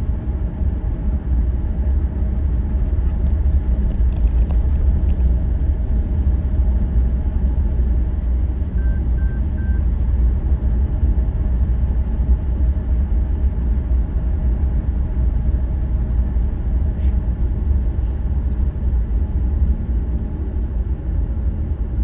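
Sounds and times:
car road and engine rumble: 0:00.0 - 0:22.0
short faint beeps: 0:08.8 - 0:09.8.

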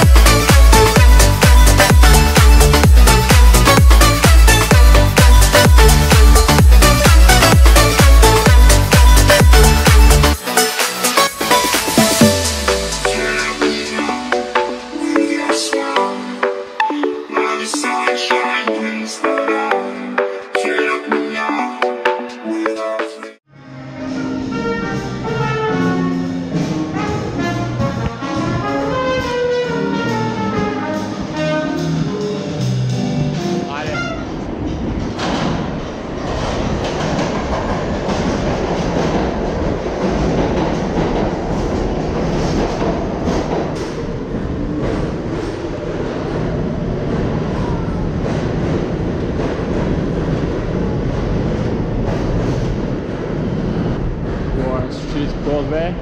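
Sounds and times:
music with brass notes: 0:00.0 - 0:16.5, 0:23.5 - 0:34.4
subway train rumbling past: 0:00.0 - 0:22.2, 0:23.4 - 0:56.0.

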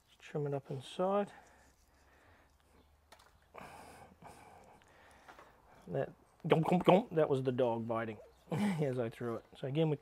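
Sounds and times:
small clicks: 0:02.5 - 0:03.5.

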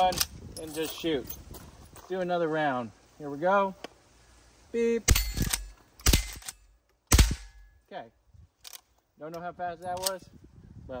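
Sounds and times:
rifle shots: 0:05.1 - 0:07.7.

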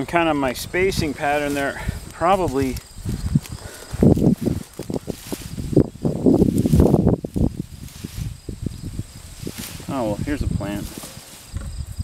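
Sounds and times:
garden fork crunching through straw: 0:01.2 - 0:11.6.

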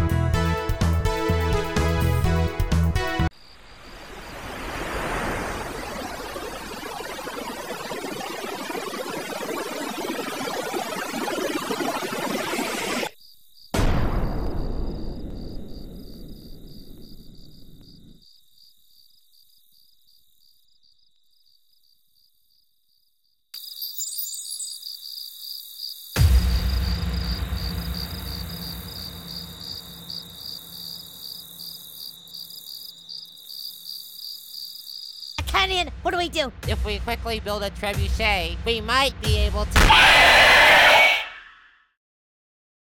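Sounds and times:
crickets chirping: 0:03.3 - 0:08.2, 0:13.1 - 0:35.4
deep booms: 0:13.8 - 0:18.0.

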